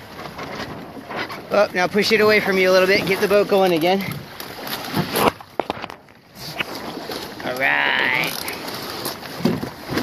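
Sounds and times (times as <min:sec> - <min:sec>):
water splashing against hulls: 0:00.0 - 0:10.0.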